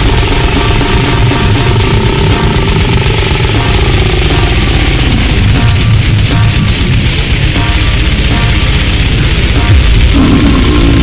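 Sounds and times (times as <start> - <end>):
distorted guitar and bass: 0.0 - 11.0
fast blast-beat drums: 0.0 - 11.0.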